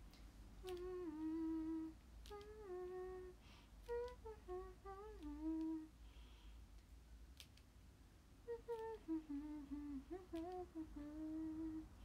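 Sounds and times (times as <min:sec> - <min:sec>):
woman humming a tune: 0:00.6 - 0:06.0, 0:08.4 - 0:12.0.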